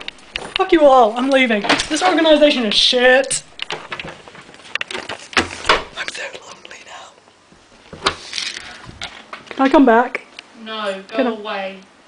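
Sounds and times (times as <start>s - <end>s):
person whispering: 6.0s - 7.2s.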